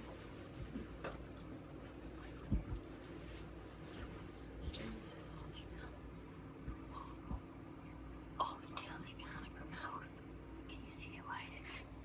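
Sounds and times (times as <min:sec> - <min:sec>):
faint steady hum: 0:00.0 - 0:12.0
soft whispering: 0:04.6 - 0:07.3, 0:08.3 - 0:12.0.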